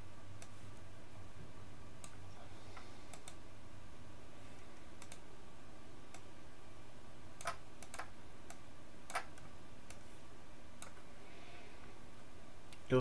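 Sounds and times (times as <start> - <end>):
low room noise hiss: 0.0 - 13.0
computer mouse clicking: 2.0 - 3.4, 4.8 - 5.3, 6.1 - 6.3, 7.4 - 10.0, 10.8 - 11.0.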